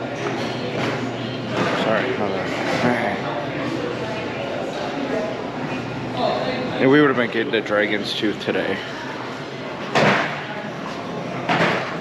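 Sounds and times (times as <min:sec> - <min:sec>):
people talking in background: 0:00.0 - 0:12.0
man speaking close to microphone: 0:06.7 - 0:08.9.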